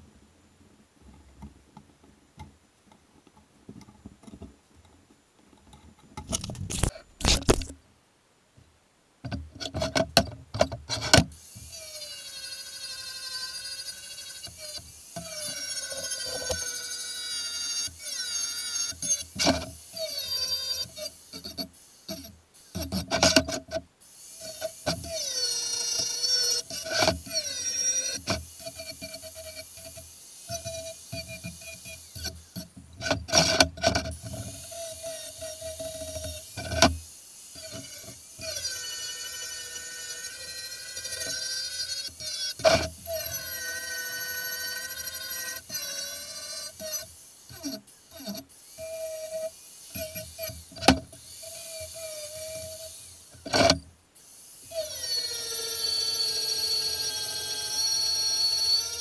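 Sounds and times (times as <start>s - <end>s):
angle grinder grinding metal: 6.3s - 7.7s, 11.4s - 53.8s, 54.6s - 59.0s.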